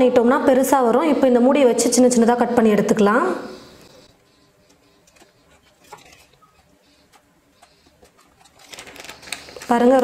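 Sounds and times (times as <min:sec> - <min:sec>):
plastic sheet rustling: 0:08.0 - 0:10.0.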